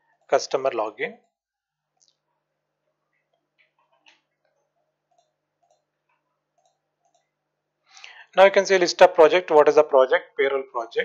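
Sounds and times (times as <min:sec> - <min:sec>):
keyboard and mouse clicks: 0:03.3 - 0:07.3.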